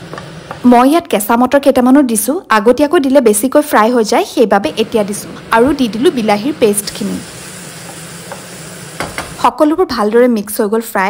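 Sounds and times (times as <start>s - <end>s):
vegetables sizzling in frying pan: 0.0s - 1.2s, 4.5s - 9.8s.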